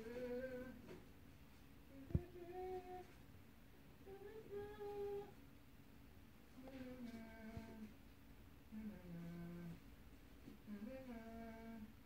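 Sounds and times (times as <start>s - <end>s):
person humming: 0.0s - 0.8s, 1.9s - 3.1s, 6.6s - 7.9s, 8.7s - 9.8s, 10.7s - 11.9s.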